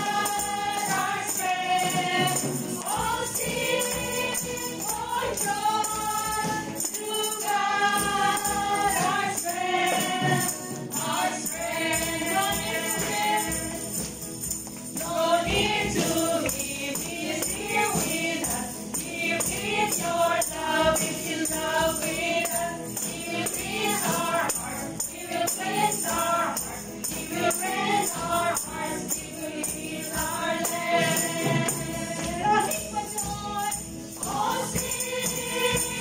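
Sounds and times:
tambourines jingling: 0:00.0 - 0:36.0
women singing worship song: 0:00.0 - 0:36.0.

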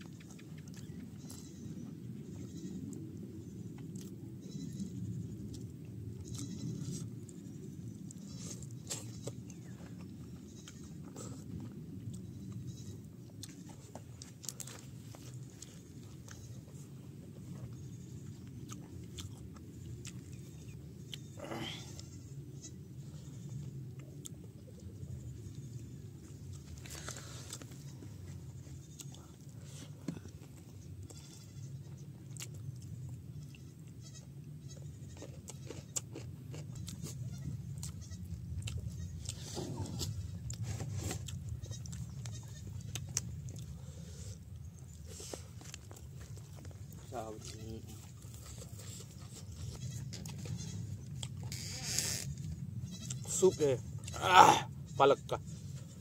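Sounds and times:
steady low rumble: 0:00.0 - 0:51.6, 0:52.2 - 0:53.2
wet chewing: 0:13.3 - 0:16.5, 0:18.2 - 0:21.3, 0:35.1 - 0:53.2.

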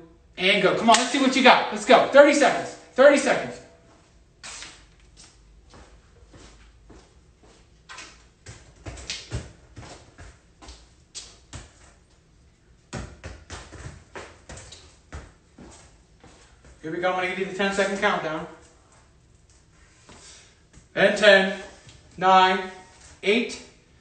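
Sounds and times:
soccer ball taps on concrete: 0:12.9 - 0:15.4.

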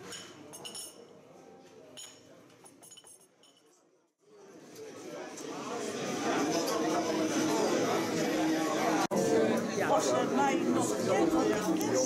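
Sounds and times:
crockery clinking: 0:00.0 - 0:01.1, 0:02.0 - 0:03.8.

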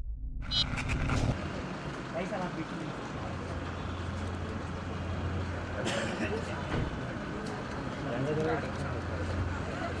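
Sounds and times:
crowd voices: 0:01.1 - 0:10.0.

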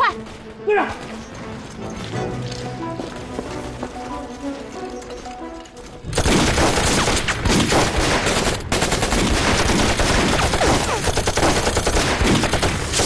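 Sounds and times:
rifle and machine-gun fire: 0:06.1 - 0:13.0.

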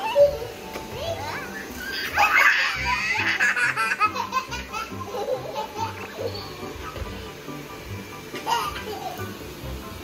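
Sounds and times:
toddler laughing: 0:01.3 - 0:07.0, 0:08.3 - 0:09.4
background music with steady beat: 0:02.0 - 0:10.0.

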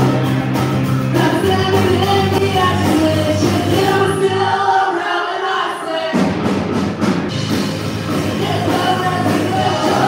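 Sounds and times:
live band playing: 0:00.0 - 0:10.0
several voices singing: 0:01.1 - 0:06.5, 0:08.0 - 0:10.0.

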